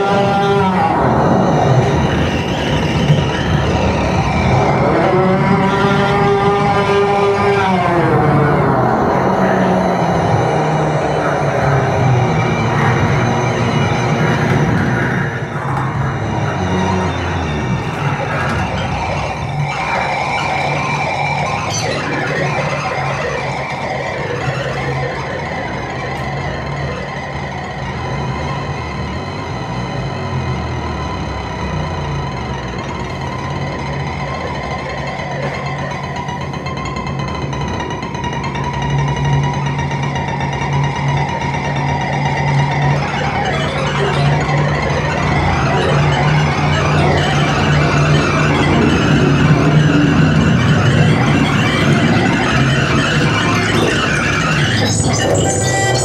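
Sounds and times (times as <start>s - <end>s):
experimental electronic drone music: 0.0s - 56.0s.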